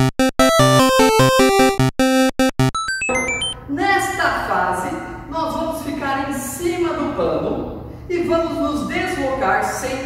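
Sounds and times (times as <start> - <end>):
video game electronic beeps: 0.0 - 3.6.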